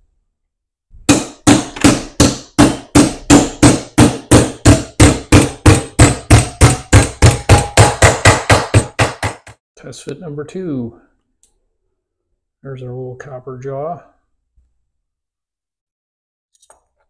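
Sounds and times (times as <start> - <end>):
hammer striking copper strip: 1.1 - 9.6.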